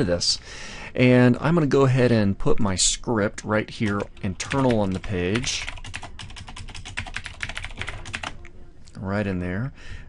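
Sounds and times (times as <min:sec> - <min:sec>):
typing on computer keyboard: 0:03.8 - 0:08.4.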